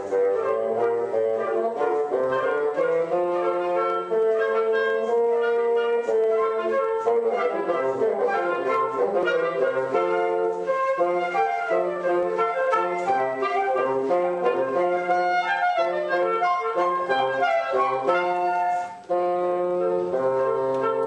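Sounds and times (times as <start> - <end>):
bassoon low notes: 0.0 - 21.0
woodwind quartet playing: 0.0 - 21.0.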